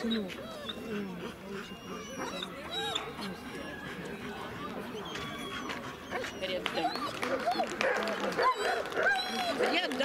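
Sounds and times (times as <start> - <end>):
dog whimpering: 0.0 - 7.7
people talking: 0.0 - 10.0.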